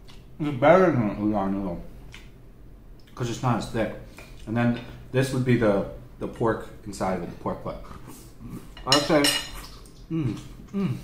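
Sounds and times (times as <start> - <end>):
person vocal sound: 10.1 - 11.0.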